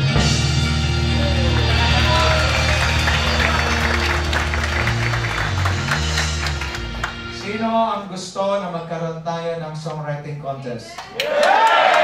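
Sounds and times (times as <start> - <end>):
live band playing worship song: 0.0 - 8.2
audience clapping: 1.0 - 7.6, 11.0 - 12.0.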